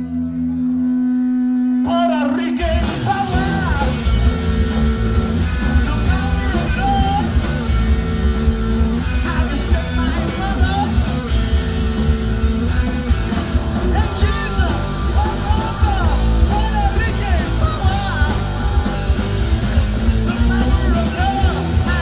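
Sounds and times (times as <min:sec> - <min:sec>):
bending electric guitar lead: 0:00.0 - 0:22.0
live rock band playing: 0:01.8 - 0:22.0.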